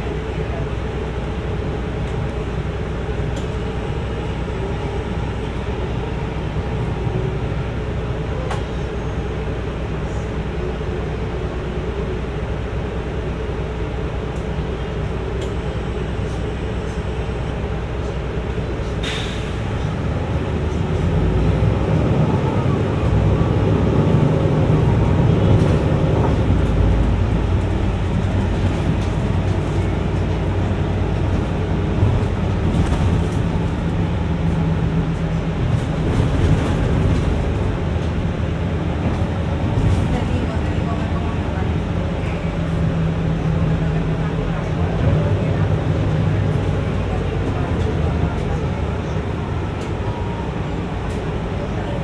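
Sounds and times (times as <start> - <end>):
bus engine accelerating: 0.0 - 52.0.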